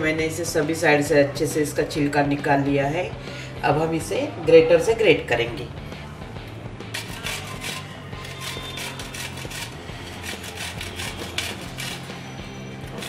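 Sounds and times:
soft background music: 0.0 - 13.0
gourd scraping on metal grater: 7.0 - 13.0.

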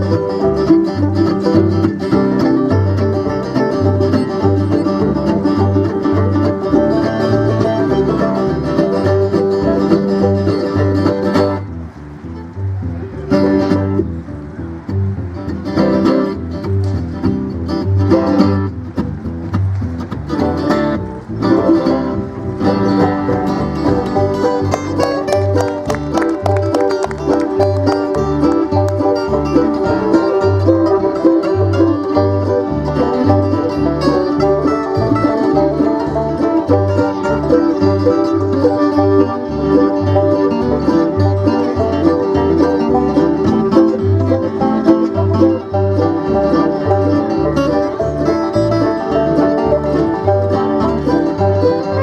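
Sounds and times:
bluegrass band playing: 0.0 - 52.0
fast banjo picking: 0.0 - 52.0
upright bass walking: 0.0 - 52.0.

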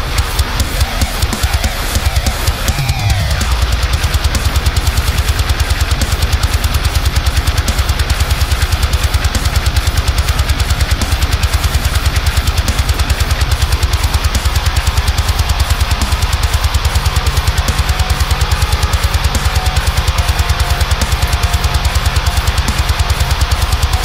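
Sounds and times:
drums: 0.0 - 24.0
electric guitar chugging: 0.0 - 24.0.

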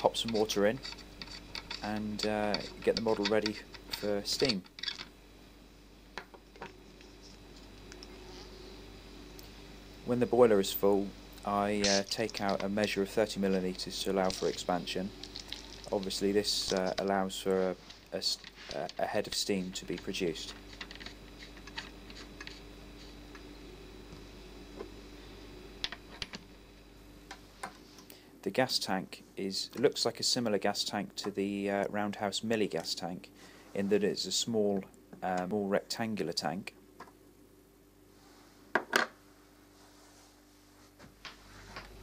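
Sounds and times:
faint buzzing hum: 0.0 - 42.0.

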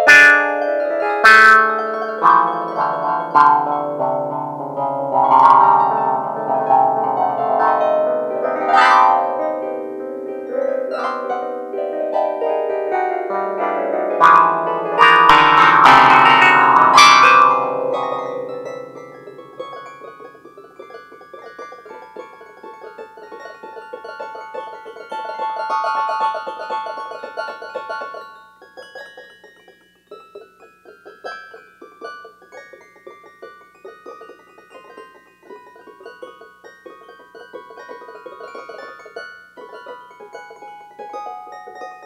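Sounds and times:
piano-like keyboard music: 0.0 - 29.1.

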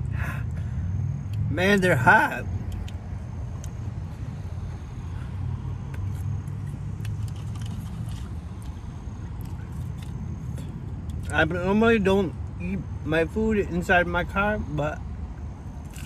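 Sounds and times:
car idling hum: 0.0 - 16.0.

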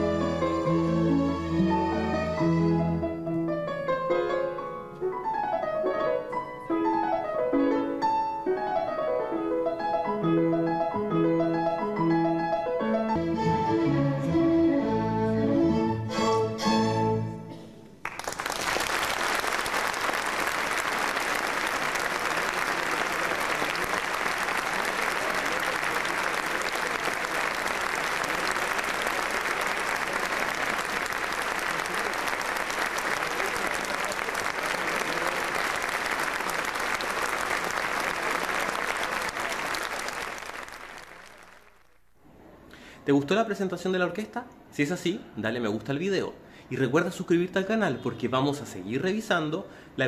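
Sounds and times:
audience applauding: 18.0 - 42.0.

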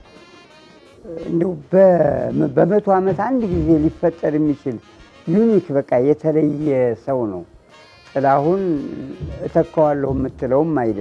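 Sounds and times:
elderly man talking: 1.0 - 7.6, 8.2 - 11.0.

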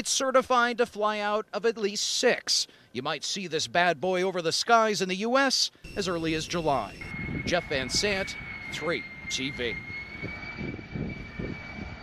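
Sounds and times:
jet engines flying low past: 5.8 - 12.0.

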